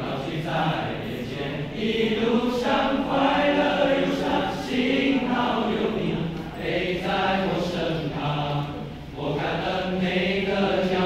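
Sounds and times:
boys' choir singing in harmony: 0:00.0 - 0:11.0.

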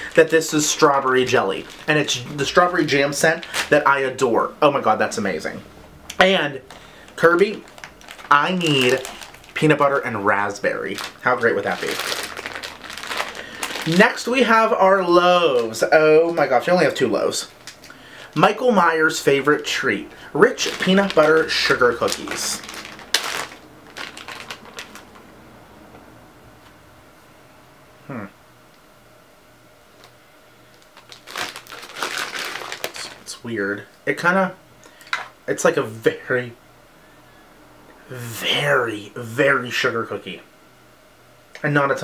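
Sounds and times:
plastic packaging crinkling: 0:00.0 - 0:05.6, 0:06.5 - 0:25.3, 0:30.0 - 0:33.4.

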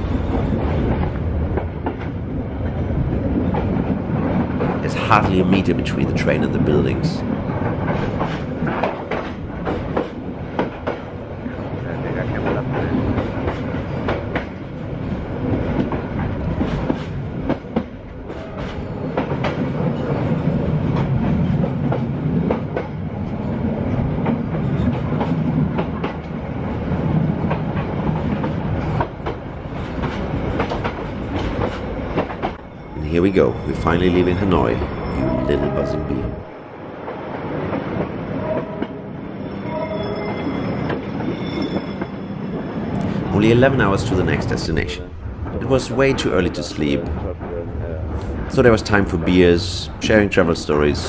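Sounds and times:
train wheels clacking: 0:00.0 - 0:36.3, 0:40.4 - 0:51.0
train rumbling: 0:00.0 - 0:51.0.

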